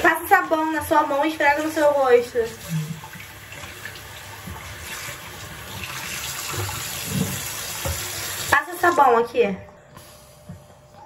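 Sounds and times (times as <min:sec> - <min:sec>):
face washing: 0:00.6 - 0:08.5
tap running into a sink: 0:02.8 - 0:09.0.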